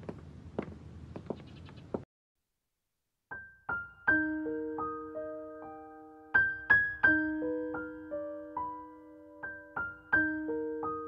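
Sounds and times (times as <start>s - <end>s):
footsteps on wooden floor: 0.0s - 2.0s.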